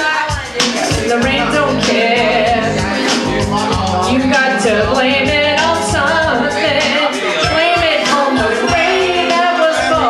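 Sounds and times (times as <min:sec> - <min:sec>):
backing track with drum beat: 0:00.0 - 0:10.0
woman singing karaoke: 0:00.0 - 0:10.0.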